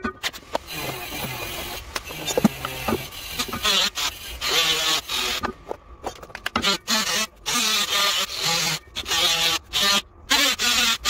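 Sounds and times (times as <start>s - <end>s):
tools and parts clicking and knocking: 5.4s - 6.8s.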